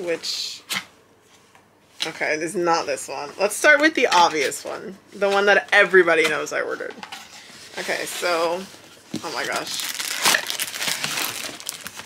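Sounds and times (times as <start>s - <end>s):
cardboard rustling and scraping: 7.2s - 12.0s.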